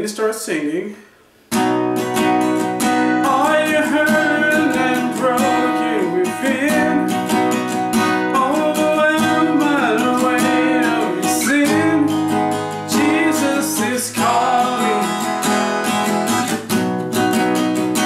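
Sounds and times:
acoustic guitar strumming: 1.4 - 18.0
man singing: 3.1 - 16.0.

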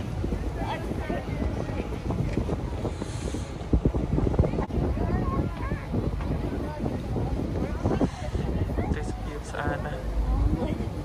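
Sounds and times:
boat engine low rumble: 0.0 - 11.0
wind buffeting microphone: 0.0 - 11.0.

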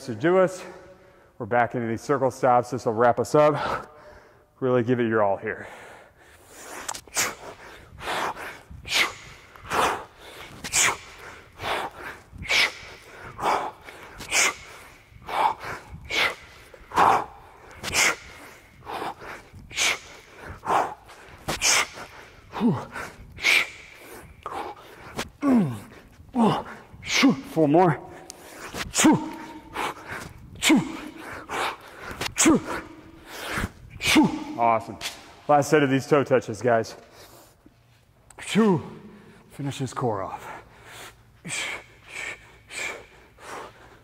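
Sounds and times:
man breathing hard: 3.5 - 4.6, 5.5 - 35.3, 40.2 - 44.0
man grunting: 22.5 - 23.0, 25.4 - 28.0, 29.0 - 31.7, 32.4 - 33.1, 34.0 - 34.9.

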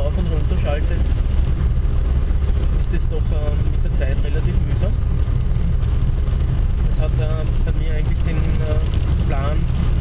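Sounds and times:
vehicle driving on wet road: 0.0 - 10.0.

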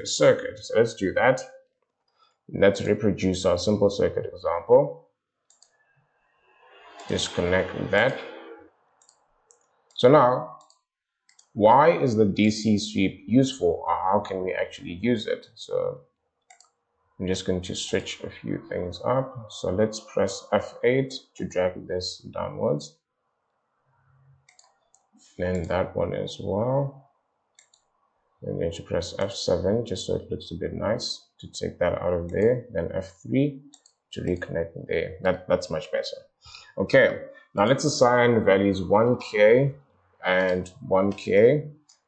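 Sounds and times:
computer mouse clicks: 5.5 - 5.8, 9.0 - 10.0, 10.6 - 11.6, 16.5 - 16.8, 24.5 - 25.8, 27.5 - 27.9, 33.7 - 34.0
faint low hum: 6.8 - 9.2, 17.2 - 22.9, 25.2 - 27.0, 28.4 - 33.6, 34.2 - 41.7.

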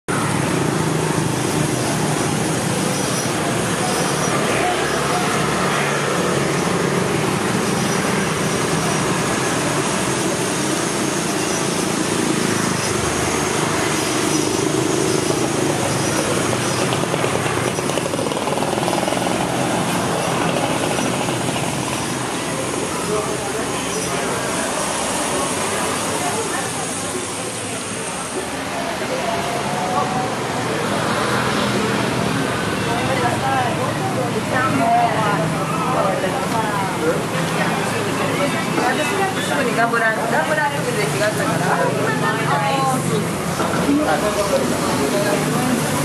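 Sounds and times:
motor scooters passing: 0.1 - 46.0.

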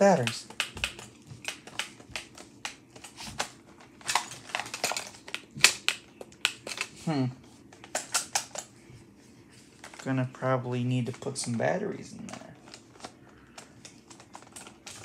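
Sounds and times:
plastic packaging clicks and crackles: 0.2 - 7.0, 7.7 - 8.7, 12.2 - 15.0.

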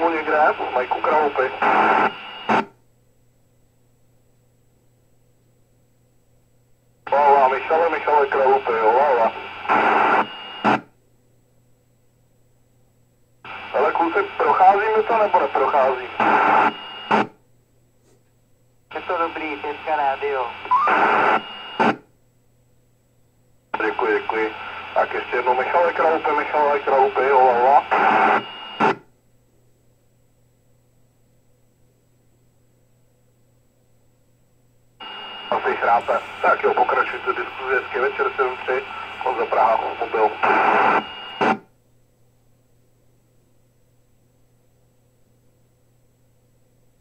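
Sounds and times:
voices over radio speaker: 0.0 - 2.6, 7.1 - 10.8, 13.5 - 17.2, 18.9 - 22.0, 23.7 - 29.0, 35.0 - 41.6
faint low hum: 0.0 - 47.0.

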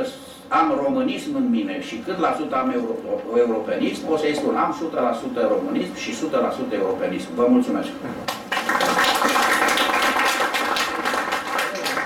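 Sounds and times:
audience applauding: 8.3 - 12.0.

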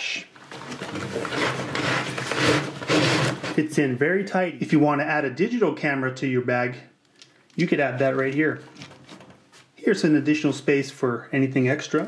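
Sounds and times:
leather pouch scraping fabric pocket: 0.7 - 3.6.

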